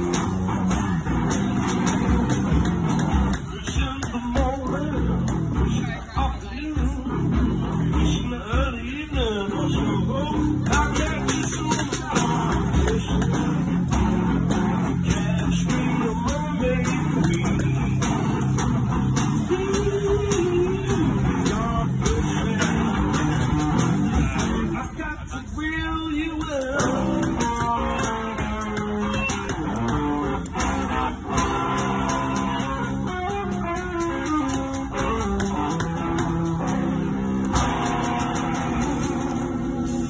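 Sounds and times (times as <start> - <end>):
bluesy electric guitar: 0.0 - 40.0.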